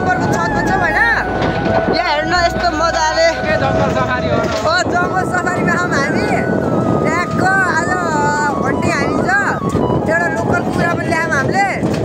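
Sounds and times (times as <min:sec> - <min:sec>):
steady humming drone: 0:00.0 - 0:08.7
constant whine: 0:00.0 - 0:12.0
people's voices: 0:00.0 - 0:12.0.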